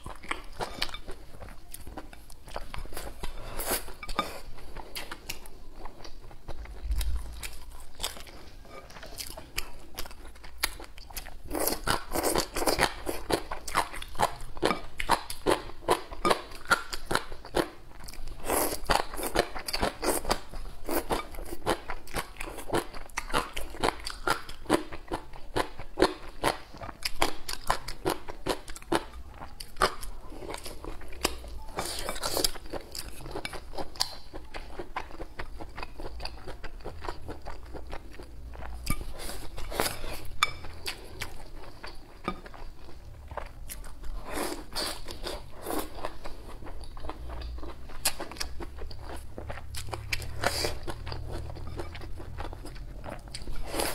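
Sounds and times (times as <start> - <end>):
chewing crisp food: 0.0 - 53.9.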